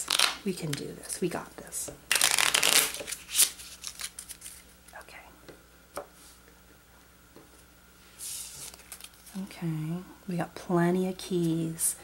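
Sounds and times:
playing cards being shuffled: 0.0s - 0.8s, 2.1s - 5.0s, 8.1s - 9.4s.

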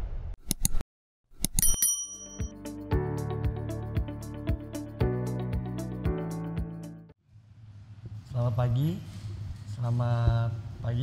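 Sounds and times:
bright bell ding: 1.6s - 2.6s
music with steady beat: 2.4s - 7.1s.

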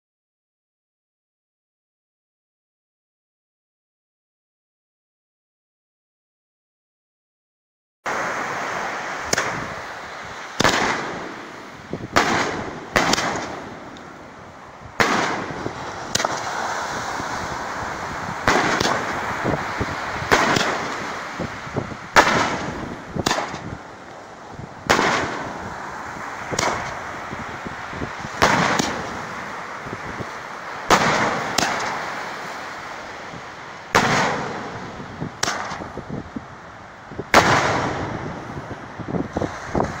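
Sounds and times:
firework bangs with echo: 9.3s - 9.8s, 10.6s - 14.0s, 15.0s - 16.6s, 18.4s - 19.5s, 20.1s - 21.3s, 22.1s - 23.8s, 24.8s - 25.6s, 26.5s - 27.0s, 28.3s - 29.3s, 30.9s - 32.1s, 33.9s - 35.9s, 37.3s - 38.3s.

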